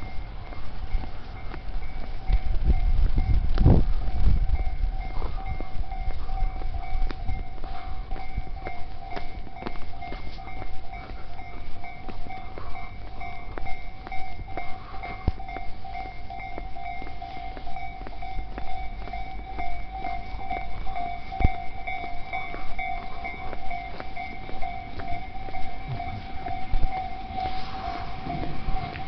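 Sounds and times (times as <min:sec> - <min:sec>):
footsteps on paved street: 0:00.0 - 0:29.0
steady high wavering tone: 0:00.0 - 0:29.0.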